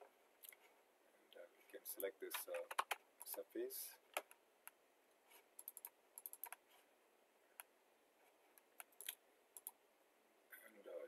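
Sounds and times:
keyboard and mouse clicks: 2.0s - 3.4s, 4.1s - 4.8s, 5.6s - 6.6s, 8.6s - 9.8s.

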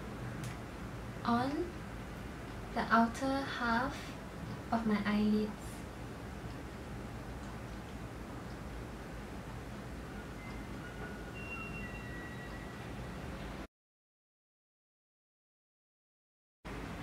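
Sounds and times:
low hum and hiss: 0.0s - 13.7s, 16.7s - 17.0s
faint brief high tones: 10.1s - 13.0s.

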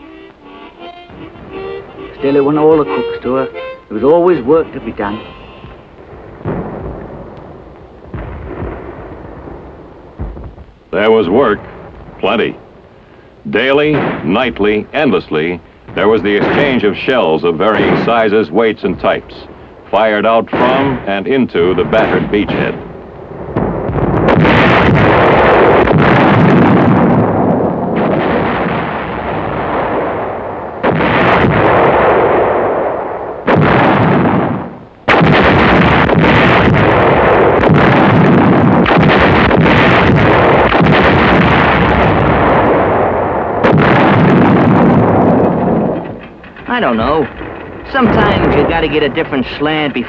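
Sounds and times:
artillery firing: 1.1s - 50.0s.

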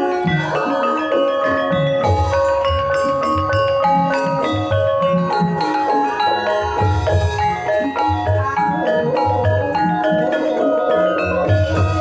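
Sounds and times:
gamelan bar instruments ringing: 0.0s - 12.0s.

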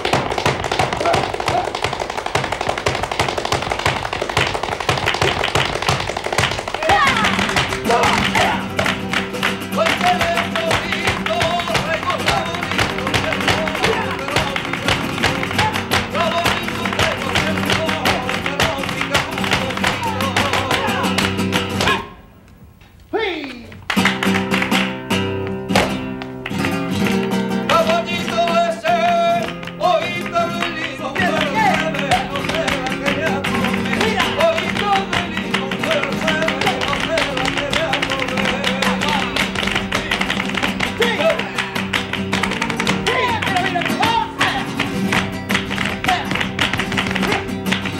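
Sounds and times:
dancer's shoe taps: 0.0s - 22.0s, 23.7s - 47.9s
hand clapping: 0.0s - 22.0s, 23.4s - 47.9s
heel stamping: 0.0s - 22.1s, 24.0s - 47.9s
flamenco guitar: 0.0s - 22.2s, 23.8s - 47.9s.

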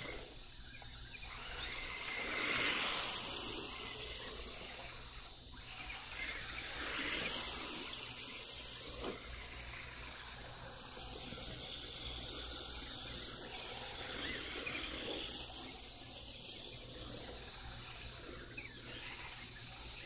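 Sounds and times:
electric motor whine: 0.0s - 20.0s
hissing tyre scrub: 1.0s - 20.0s.

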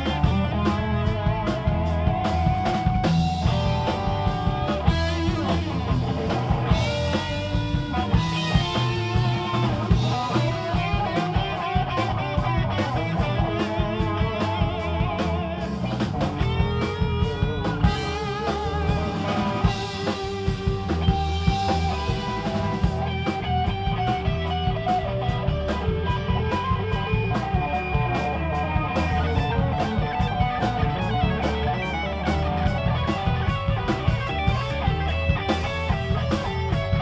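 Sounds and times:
bass and drums: 0.0s - 37.0s
electric guitar lead: 0.0s - 37.0s.

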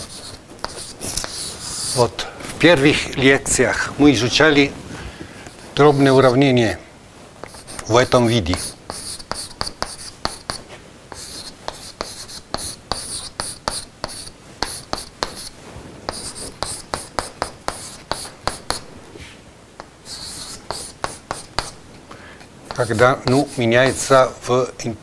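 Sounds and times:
chalk writing on a chalkboard: 0.0s - 2.1s, 7.4s - 18.9s, 19.8s - 21.8s, 22.7s - 24.1s.

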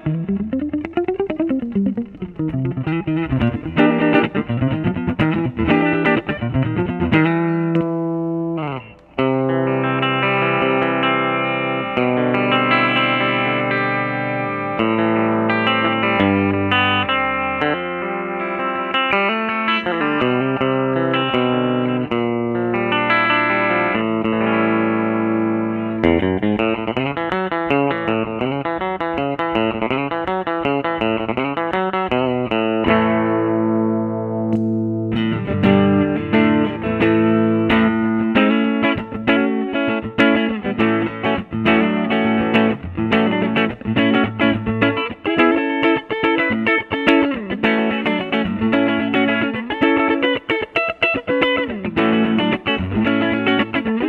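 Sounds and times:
electric guitar playing: 0.0s - 54.0s.

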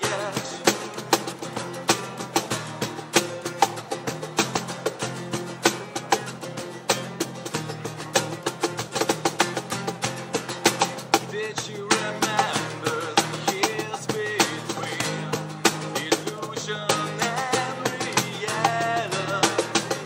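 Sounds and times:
bass guitar: 0.0s - 20.0s
cajon slapped in fast rhythm: 0.0s - 20.0s
strummed acoustic guitars: 0.0s - 20.0s.

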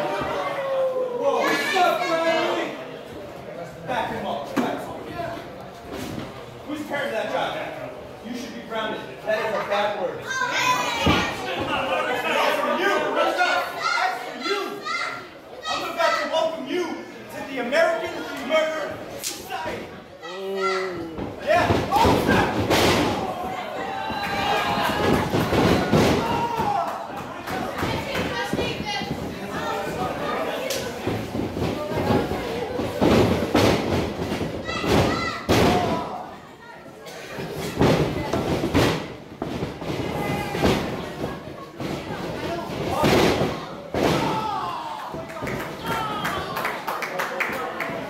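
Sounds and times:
voices shouting in a hall: 0.0s - 3.0s, 10.1s - 38.3s, 39.8s - 48.0s.

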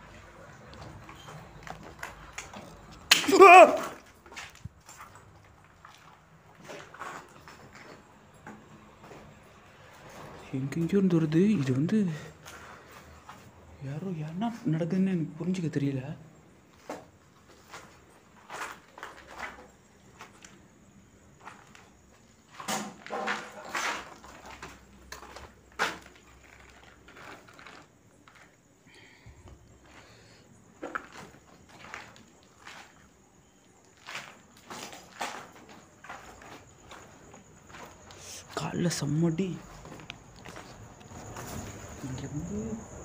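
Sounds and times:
footsteps on debris: 0.0s - 9.3s, 16.7s - 28.7s, 29.8s - 42.2s.

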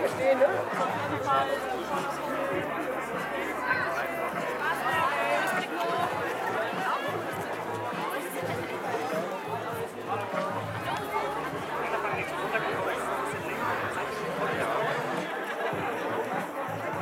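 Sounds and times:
background music: 0.0s - 17.0s
crowd chatter: 0.0s - 17.0s.

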